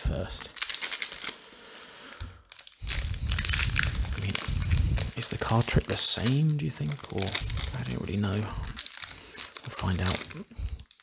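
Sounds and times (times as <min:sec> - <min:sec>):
foil wrapper crinkling: 0:00.4 - 0:01.4, 0:02.1 - 0:11.0.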